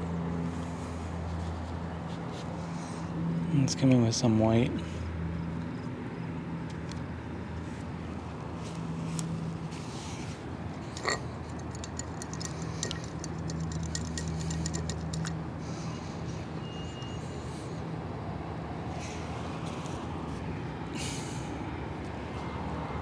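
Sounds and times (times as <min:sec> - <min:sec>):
vehicle engine humming: 0:00.0 - 0:23.0
small clicks and ticks: 0:11.0 - 0:15.4.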